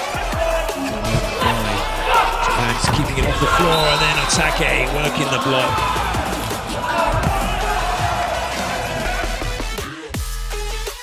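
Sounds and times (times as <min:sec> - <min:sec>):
arena crowd noise: 0:00.0 - 0:10.1.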